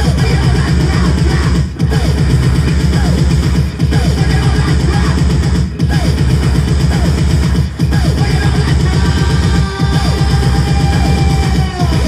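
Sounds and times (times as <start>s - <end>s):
electro-punk band playing live: 0.0s - 12.0s.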